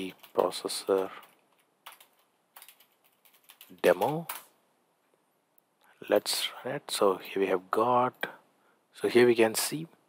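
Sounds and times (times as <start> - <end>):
keyboard typing: 0.0 - 4.5.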